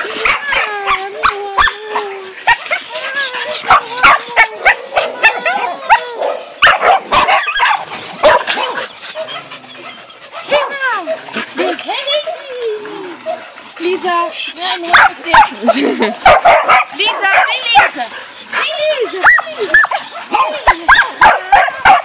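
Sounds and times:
dogs barking and yipping: 0.0s - 22.0s
dog whining: 8.3s - 11.2s.

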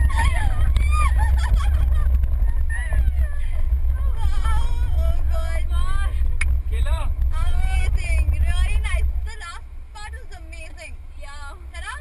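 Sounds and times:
car engine and road noise: 0.0s - 12.0s
woman talking: 2.8s - 6.2s, 7.3s - 12.0s.

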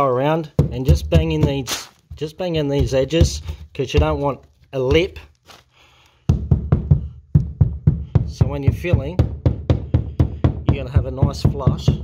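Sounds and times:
hollow knocks on plasterboard: 0.6s - 4.3s, 6.3s - 12.0s.

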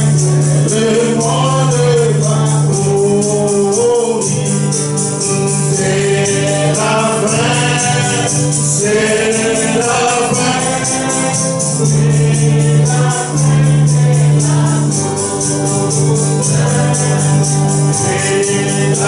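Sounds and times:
congregation singing a gospel song: 0.0s - 19.0s
high percussion beat: 0.0s - 19.0s.

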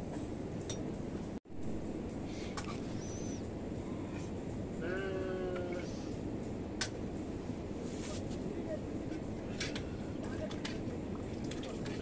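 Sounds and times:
low steady background noise: 0.0s - 12.0s.

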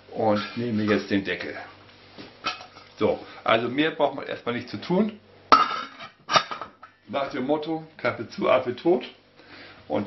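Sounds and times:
metal lid clanking onto pot: 5.5s - 6.8s.

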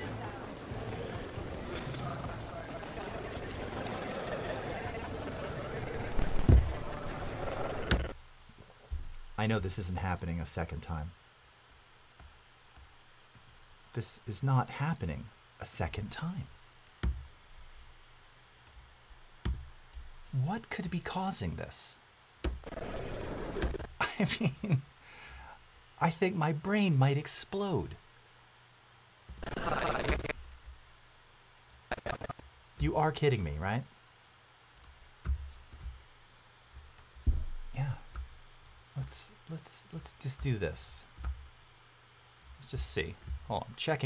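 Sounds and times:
stuttering soundtrack playback: 0.0s - 8.2s, 29.4s - 30.4s, 31.9s - 32.4s
voices: 0.0s - 8.2s, 29.4s - 30.4s, 39.0s - 41.1s, 42.5s - 44.0s
deep thump: 37.2s - 37.7s.

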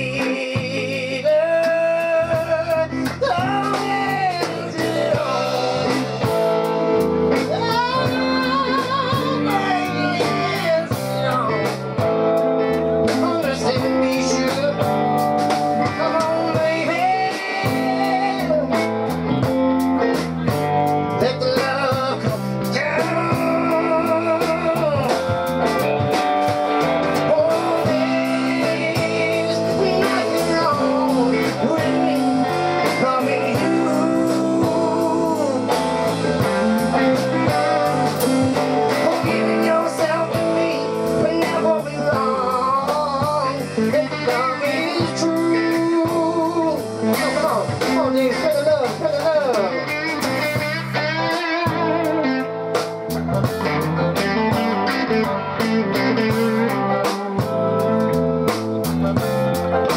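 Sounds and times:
person singing: 0.0s - 58.5s
drum kit: 0.0s - 59.9s
electric guitars: 0.0s - 59.9s.

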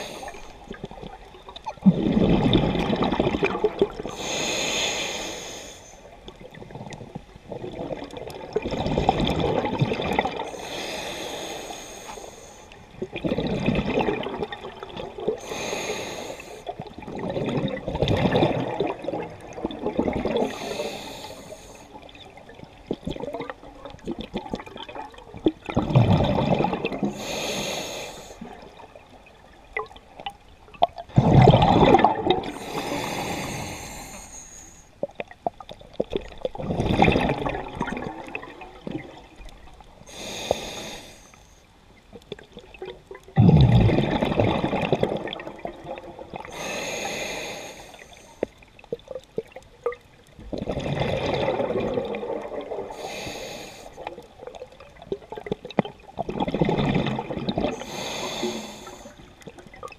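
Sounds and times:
exhaled bubbles rushing: 0.0s - 4.1s, 6.3s - 10.5s, 13.0s - 15.4s, 16.8s - 20.6s, 22.0s - 27.2s, 30.7s - 32.6s, 35.2s - 39.8s, 42.3s - 46.5s, 48.9s - 53.1s, 54.0s - 57.8s
diver inhaling through regulator: 4.1s - 6.0s, 10.5s - 12.8s, 15.4s - 16.7s, 20.4s - 22.0s, 27.1s - 28.5s, 32.5s - 34.9s, 40.1s - 41.6s, 46.5s - 48.4s, 52.9s - 54.1s, 57.7s - 59.3s.

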